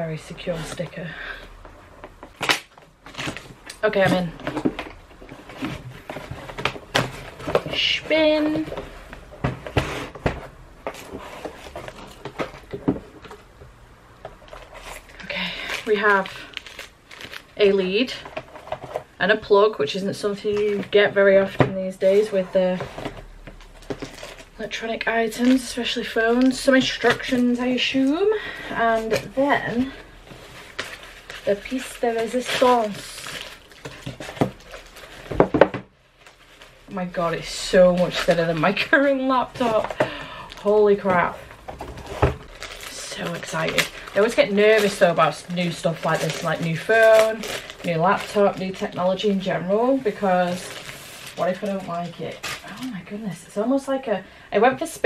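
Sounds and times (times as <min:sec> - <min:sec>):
packaging rustling: 0:02.0 - 0:13.6, 0:14.3 - 0:19.2, 0:20.4 - 0:53.1
cardboard packaging knocks and rustles: 0:33.3 - 0:35.9, 0:41.1 - 0:42.8.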